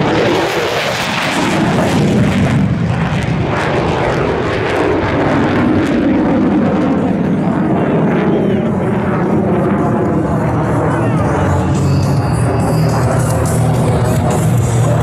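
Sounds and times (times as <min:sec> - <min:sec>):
jet engine passing low: 0:00.0 - 0:15.0.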